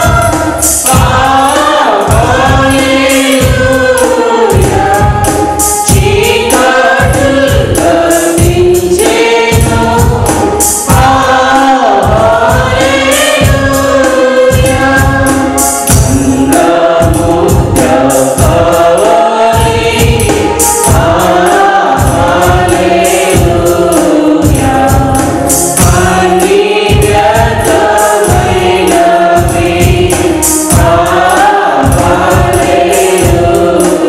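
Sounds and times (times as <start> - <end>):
accompaniment with steady beat: 0.0 - 34.0
mixed choir singing a hymn: 0.0 - 34.0.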